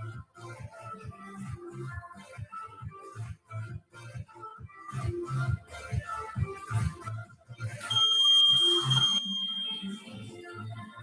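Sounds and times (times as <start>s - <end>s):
music with steady beat: 0.0s - 11.0s
high electronic timer beep: 7.9s - 10.0s.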